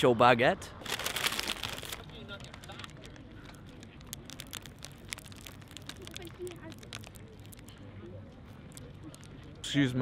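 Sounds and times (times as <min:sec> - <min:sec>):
crunching of bread crust: 0:00.8 - 0:07.8
paper crinkling: 0:00.8 - 0:07.8.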